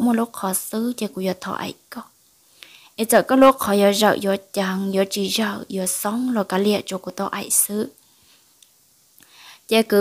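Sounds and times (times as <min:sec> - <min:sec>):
person narrating: 0:00.0 - 0:02.1, 0:03.0 - 0:08.0, 0:09.7 - 0:10.0.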